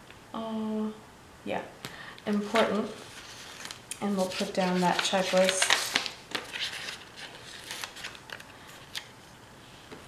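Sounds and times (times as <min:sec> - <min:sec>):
sticker sheet rustling: 0:02.4 - 0:09.1.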